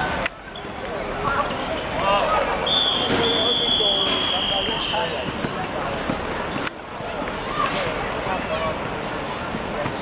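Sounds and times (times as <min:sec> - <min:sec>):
referee's whistle blast: 0:02.6 - 0:05.2.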